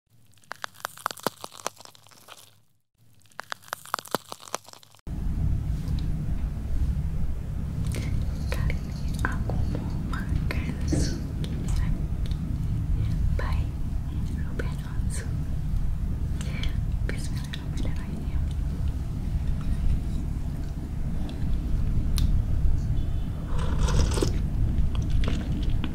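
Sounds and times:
low room hum: 0.1s - 25.9s
sharp crunchy clicks: 0.2s - 5.0s.

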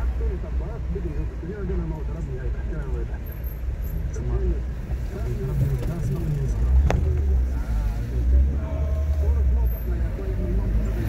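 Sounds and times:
car driving slowly: 0.0s - 11.0s
indistinct voices: 0.0s - 11.0s.

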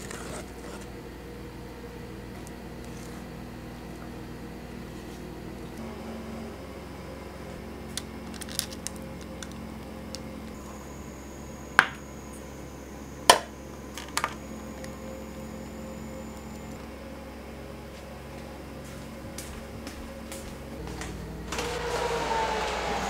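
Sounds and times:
steady low hum: 0.0s - 23.0s.

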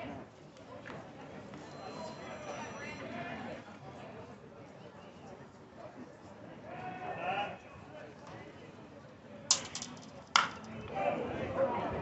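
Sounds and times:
bat knocking ball: 9.5s - 10.7s.

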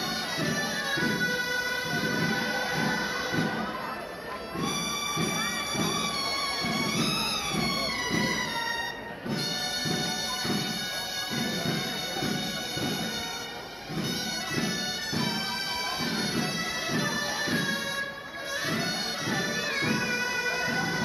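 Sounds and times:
drum beating: 0.0s - 21.0s
shawms playing a tune: 0.0s - 21.0s.

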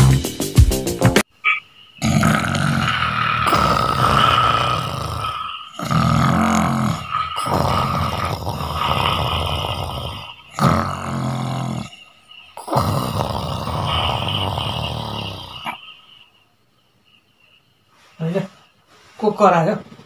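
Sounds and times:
man snoring loudly: 2.0s - 15.9s.

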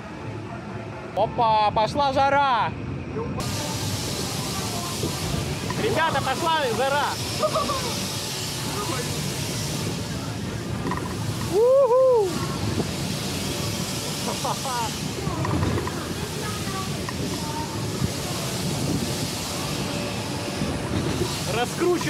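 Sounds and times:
wind noise on microphone: 3.4s - 6.2s, 9.3s - 14.2s, 15.0s - 22.0s
loud whoop: 11.5s - 12.4s.

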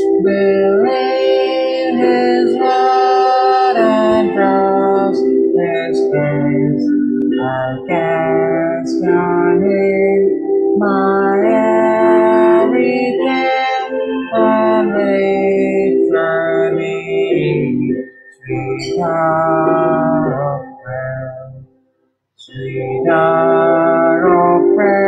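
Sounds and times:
person singing a hymn: 0.0s - 21.6s, 22.4s - 25.0s
electronic organ chords: 0.0s - 21.8s, 22.4s - 25.0s.

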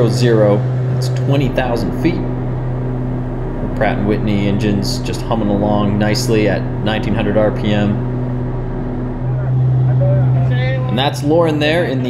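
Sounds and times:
turboprop engines humming: 0.0s - 12.0s.

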